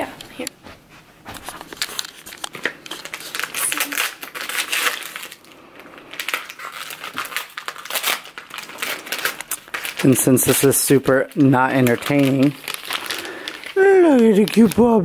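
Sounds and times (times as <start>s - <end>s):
paper gift wrap crinkling and tearing: 1.4s - 15.0s.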